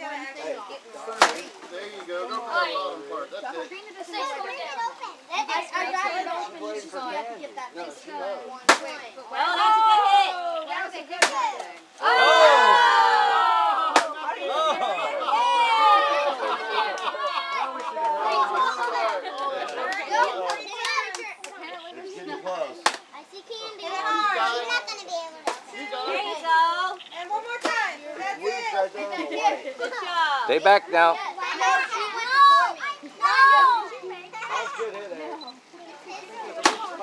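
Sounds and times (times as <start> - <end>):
stick striking cardboard pinata: 1.2 - 1.5, 8.7 - 9.0, 11.2 - 11.7, 13.9 - 14.2, 22.8 - 23.0, 25.4 - 25.7, 36.6 - 36.9
children shouting and shrieking: 9.2 - 22.4, 23.0 - 37.0.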